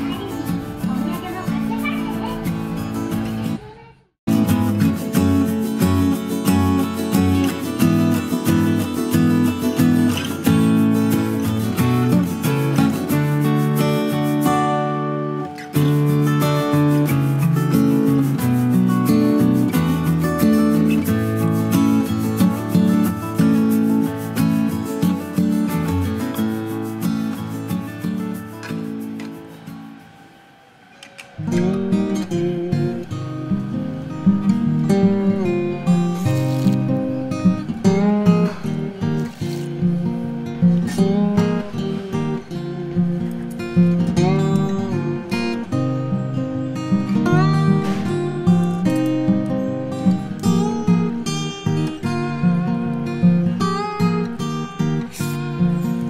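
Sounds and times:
strummed acoustic guitar music: 0.0 - 56.0.

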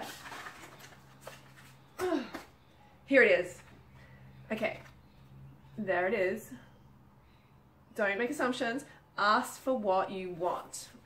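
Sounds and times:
cards rustling: 0.0 - 2.5
low steady hum: 0.2 - 11.0.

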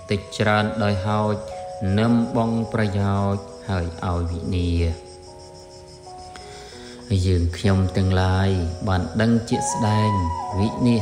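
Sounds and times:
man chanting: 0.0 - 5.0, 7.1 - 11.0
soft music of sustained tones: 0.0 - 11.0.

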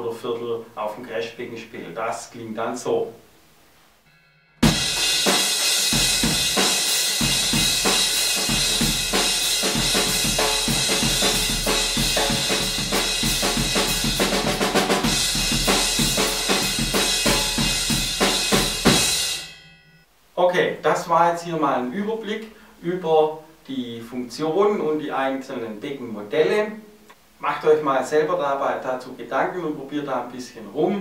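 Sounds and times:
crash cymbal ringing: 4.1 - 14.4, 15.0 - 20.1
rock drum groove: 4.6 - 19.6.

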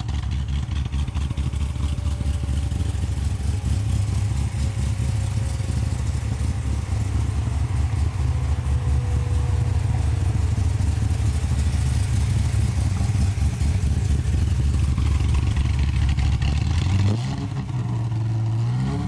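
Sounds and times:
car engine idling: 0.0 - 18.3.

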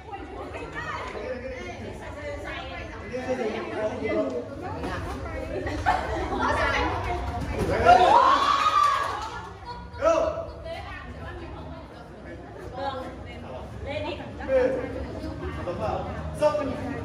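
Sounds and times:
crowd chattering in a hall: 0.0 - 17.0.

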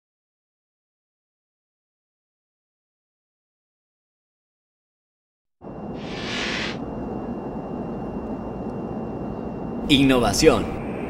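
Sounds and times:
brief hiss: 6.0 - 6.8.

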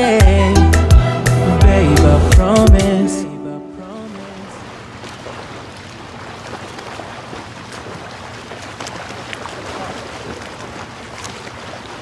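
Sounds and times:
water washing: 3.8 - 12.0.

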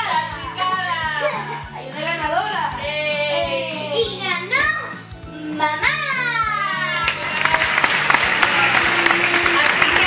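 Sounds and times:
background music: 0.0 - 10.0
people clapping and cheering: 6.8 - 10.0.

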